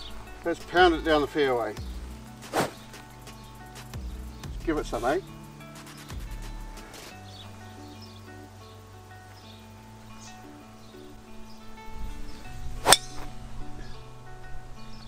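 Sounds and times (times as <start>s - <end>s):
background music with held notes: 0.0s - 15.0s
golf club hitting ball: 12.8s - 13.3s.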